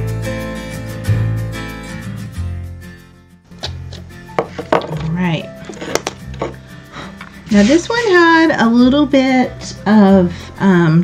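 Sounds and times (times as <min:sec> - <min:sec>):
background music: 0:00.0 - 0:11.0
taps on hard board: 0:04.4 - 0:05.0.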